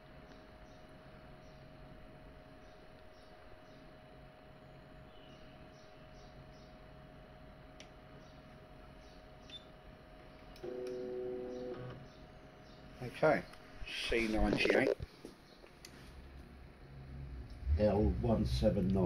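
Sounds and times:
faint steady hum: 0:00.0 - 0:19.0
two-pitch motor whine: 0:10.6 - 0:12.0.

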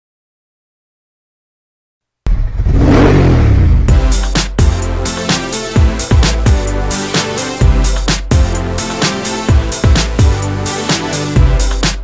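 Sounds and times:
engine revving: 0:02.3 - 0:06.3
music with drum beat: 0:03.9 - 0:12.0.

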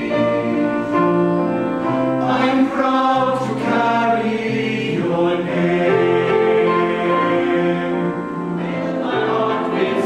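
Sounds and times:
male choir singing: 0:00.0 - 0:10.0.

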